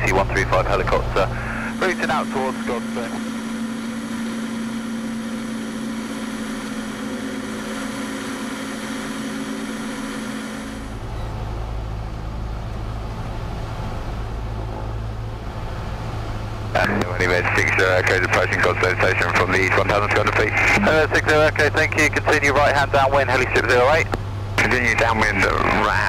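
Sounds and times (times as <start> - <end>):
propeller plane engine droning: 0.0 - 26.0.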